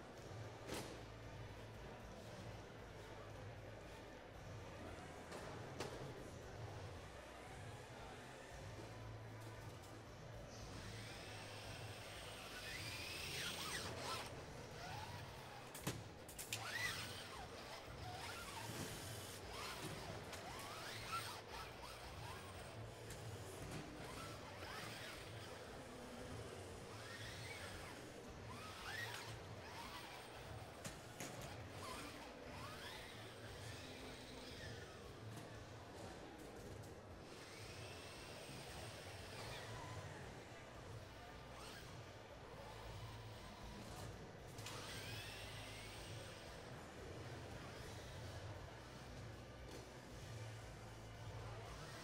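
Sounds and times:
low background hum: 0.0s - 52.0s
robot drive motors whining: 7.1s - 35.8s, 41.6s - 47.0s.

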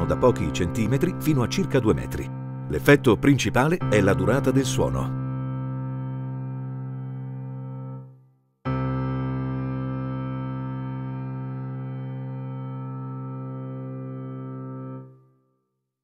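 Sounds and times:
grand piano low note: 0.0s - 8.0s.

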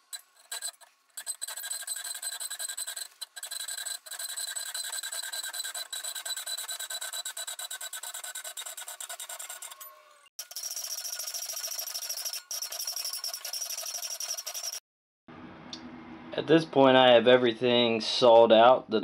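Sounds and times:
hacksaw cutting steel: 0.0s - 14.8s.

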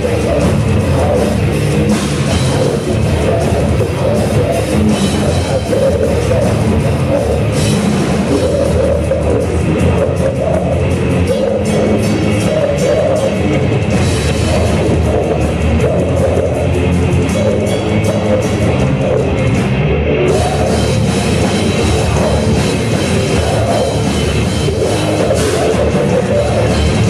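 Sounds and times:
metal band playing live: 0.0s - 27.0s.

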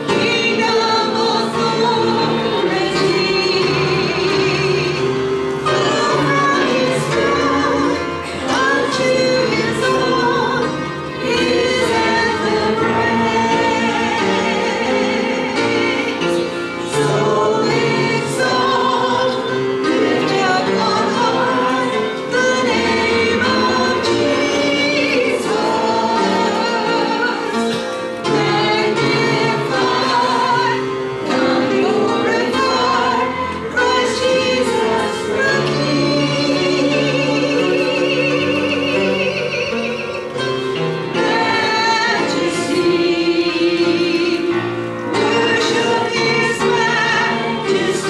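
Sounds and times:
woman singing into a microphone: 0.0s - 5.1s
congregation singing a hymn: 0.0s - 48.0s.

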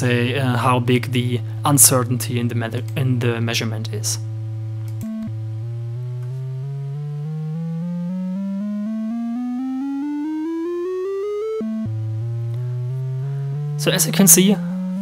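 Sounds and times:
synth tone climbing in semitones: 5.0s - 13.8s.

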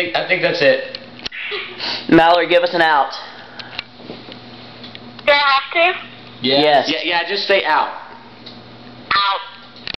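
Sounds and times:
steady low hum: 0.0s - 10.0s
voice from phone speaker: 5.3s - 6.1s, 9.1s - 9.6s.

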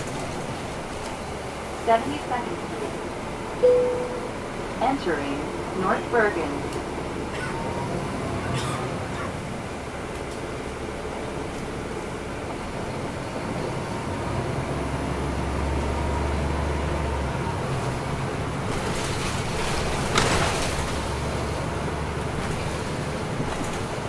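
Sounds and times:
bus diesel engine running: 0.0s - 24.0s
tyre and road noise: 7.2s - 24.0s.

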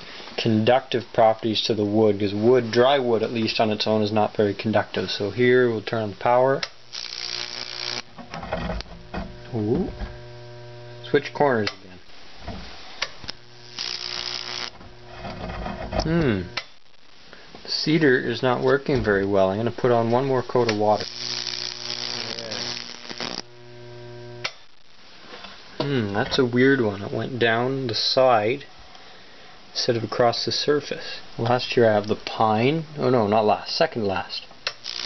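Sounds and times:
electrical arc crackling hiss: 0.0s - 28.7s, 29.7s - 35.0s
low electrical hum: 0.0s - 35.0s.

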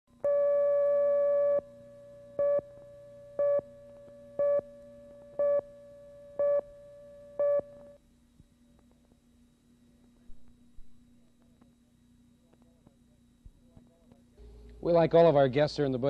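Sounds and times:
faint low hum: 0.1s - 16.0s.

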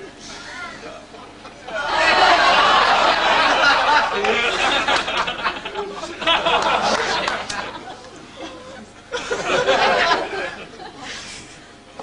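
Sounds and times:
audience laughter: 1.1s - 11.5s.

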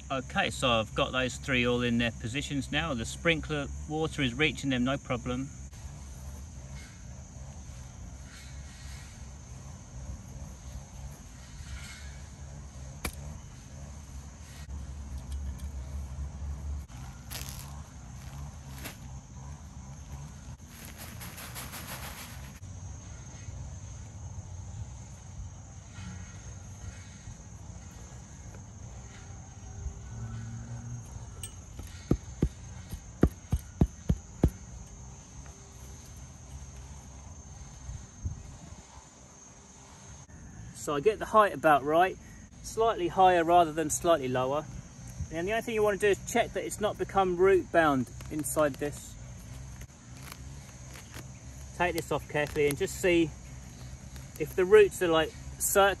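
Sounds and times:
low outdoor rumble: 0.0s - 40.9s, 42.2s - 56.0s
insects chirring: 0.0s - 56.0s
sharp knocks: 31.8s - 34.6s.

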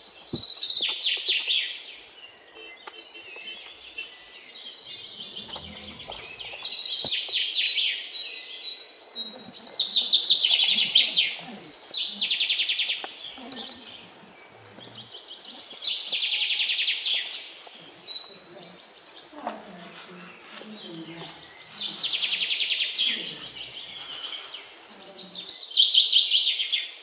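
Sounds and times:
birds chirping: 0.0s - 27.0s.

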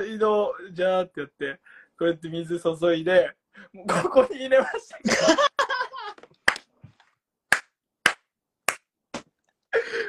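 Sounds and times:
people laughing: 4.7s - 6.2s
hand claps: 6.2s - 6.7s, 7.5s - 9.3s.

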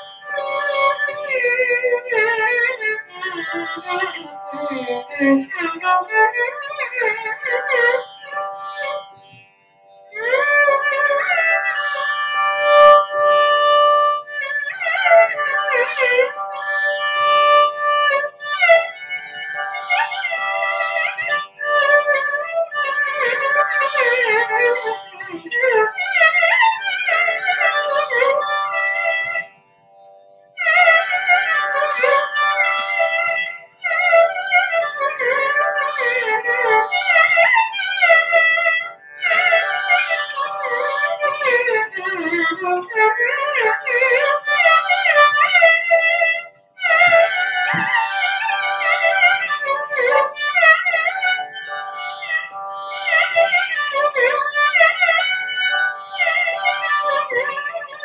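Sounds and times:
violin melody: 0.0s - 58.0s.

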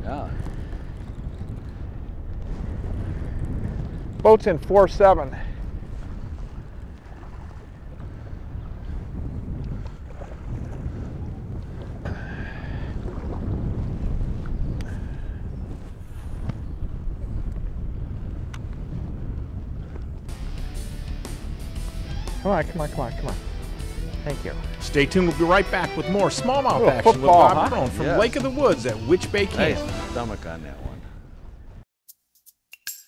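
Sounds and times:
water rumbling against boat: 0.0s - 31.6s
wind buffeting microphone: 0.0s - 31.8s
guitar music: 20.3s - 30.4s.

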